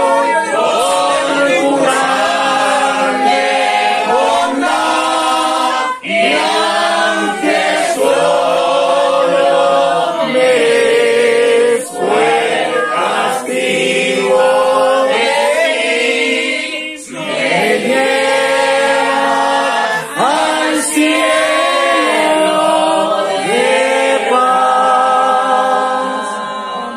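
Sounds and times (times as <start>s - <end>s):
congregation singing unaccompanied: 0.0s - 26.9s.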